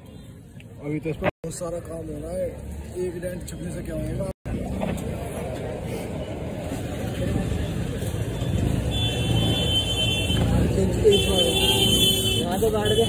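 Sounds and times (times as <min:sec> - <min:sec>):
low traffic rumble: 0:00.0 - 0:13.0
voices nearby: 0:00.0 - 0:13.0.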